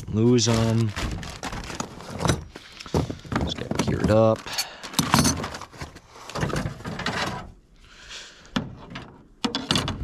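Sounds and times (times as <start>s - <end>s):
gear clattering in metal toolbox: 3.4s - 5.8s.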